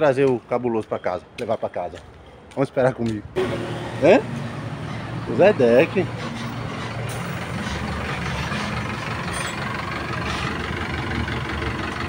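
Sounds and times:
diesel minibus engine running: 3.4 - 12.0.

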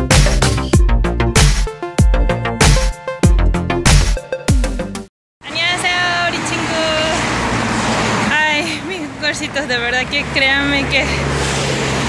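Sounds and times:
car passing on road: 5.5 - 12.0.

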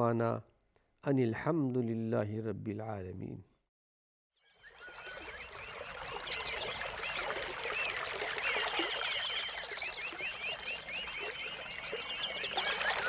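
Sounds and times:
running water: 4.8 - 13.0.

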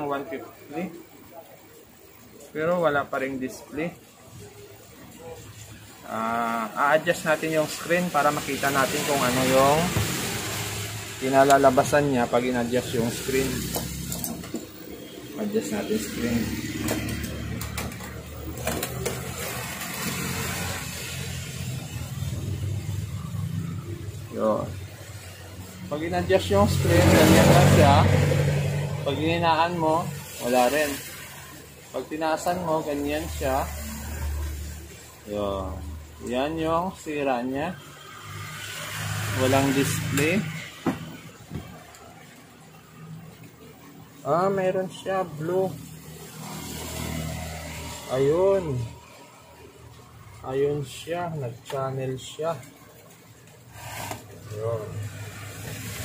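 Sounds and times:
television static hiss: 0.0 - 56.0.

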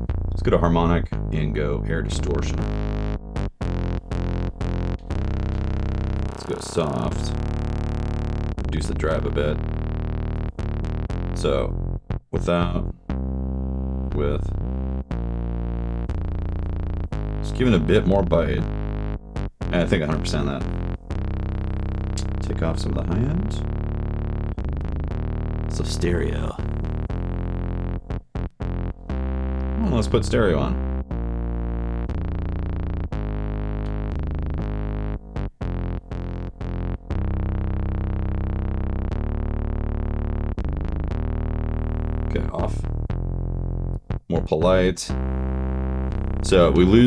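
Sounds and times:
distorted synth bass notes: 0.0 - 47.0.

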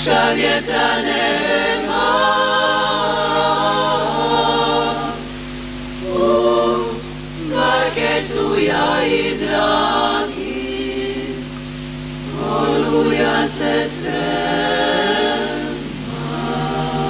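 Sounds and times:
women singing a cappella in harmony: 0.0 - 17.0.

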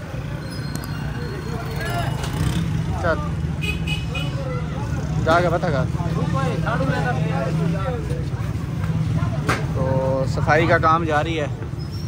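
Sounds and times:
low rumble of street traffic: 0.0 - 12.0.

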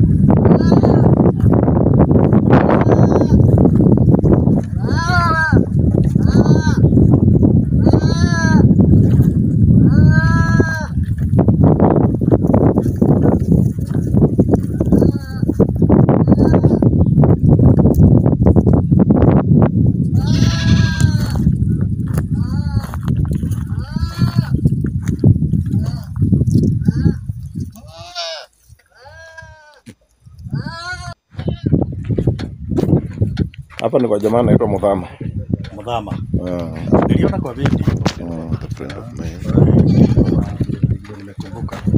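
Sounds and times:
goat bleating: 0.5 - 1.3, 2.6 - 3.6, 4.8 - 6.9, 7.8 - 8.7, 9.8 - 11.0, 14.7 - 15.6, 16.2 - 16.8, 20.1 - 21.5, 22.4 - 22.9, 23.6 - 24.6, 25.7 - 26.2, 26.8 - 29.9, 30.5 - 31.8, 38.4 - 40.6.

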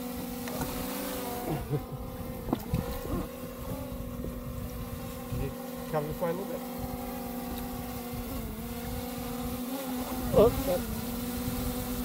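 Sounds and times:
wind rumbling on microphone: 1.5 - 6.0, 6.7 - 12.0.

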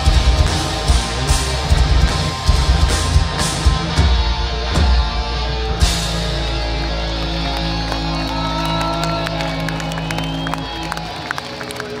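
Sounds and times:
metal band chord on guitars: 0.0 - 8.2
crowd cheering: 4.8 - 12.0
crowd clapping: 6.2 - 12.0.

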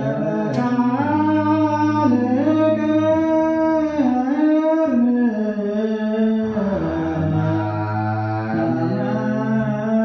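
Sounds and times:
men singing liturgical chant: 0.0 - 10.0.

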